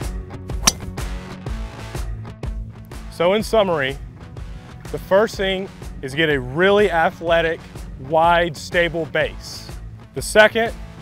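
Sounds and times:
golf club striking ball: 0.6s - 1.0s.

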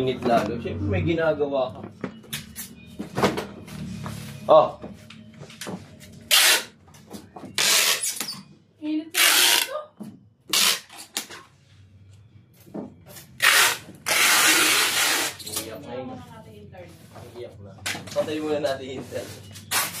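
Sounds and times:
packing tape ripping from dispenser: 6.3s - 6.7s, 7.6s - 8.3s, 9.2s - 9.8s, 10.5s - 11.3s, 13.4s - 15.6s, 19.7s - 20.0s.

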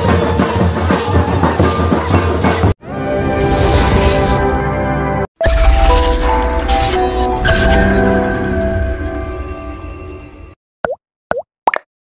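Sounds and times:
cartoon plop sound effects: 10.8s - 11.9s.

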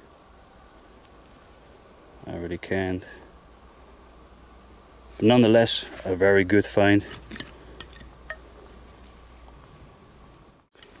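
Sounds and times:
small hard objects clinking: 7.0s - 8.4s, 10.7s - 11.0s.

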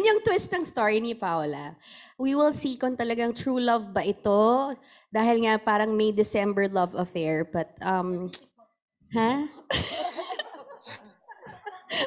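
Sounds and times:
woman speaking: 0.0s - 8.4s, 9.1s - 9.7s
woman's breathy laughter: 9.7s - 12.0s.

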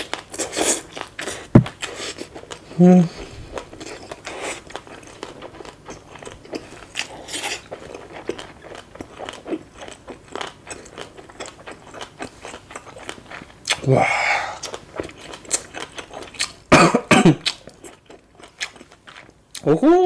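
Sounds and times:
close chewing with wet crunches: 3.3s - 13.9s, 14.6s - 16.7s, 17.4s - 19.7s.

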